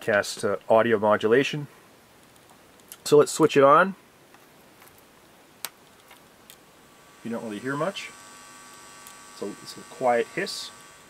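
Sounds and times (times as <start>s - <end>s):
quiet hiss: 0.0s - 11.0s.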